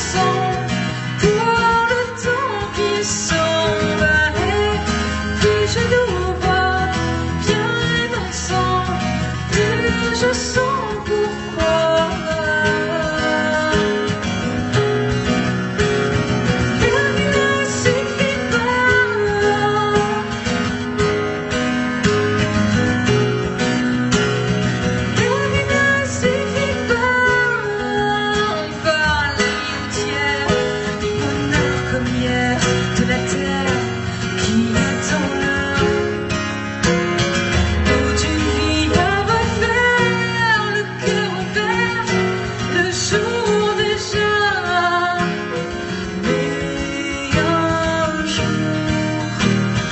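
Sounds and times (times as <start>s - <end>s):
woman singing: 0.0s - 15.4s, 16.5s - 21.2s, 25.0s - 49.9s
strummed acoustic guitar: 0.0s - 49.9s.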